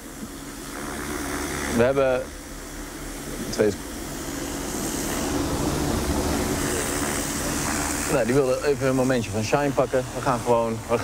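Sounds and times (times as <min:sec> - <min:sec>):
vehicle engine passing by: 0:04.6 - 0:08.4
conversation: 0:07.1 - 0:11.0.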